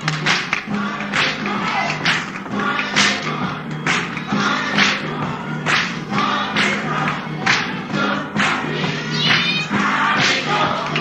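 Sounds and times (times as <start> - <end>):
choir singing gospel song: 0.6 - 11.0.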